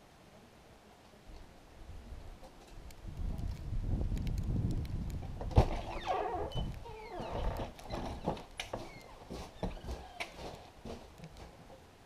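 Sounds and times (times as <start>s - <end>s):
footsteps on wooden deck: 5.2s - 11.8s
door creaking squeal: 5.7s - 10.3s.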